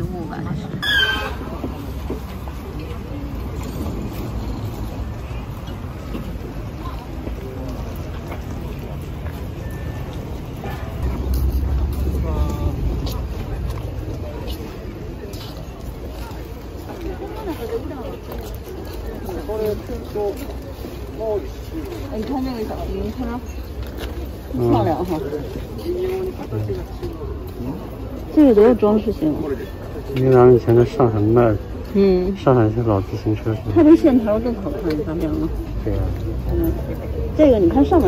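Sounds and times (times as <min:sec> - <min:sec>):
indistinct voices: 0:00.0 - 0:20.5
people talking: 0:10.6 - 0:20.5
low rumble: 0:11.0 - 0:14.4.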